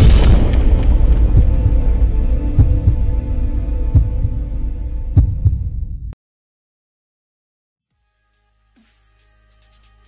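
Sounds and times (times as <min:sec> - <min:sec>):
deep thumps: 0:00.0 - 0:03.3, 0:03.9 - 0:04.4, 0:05.1 - 0:06.2.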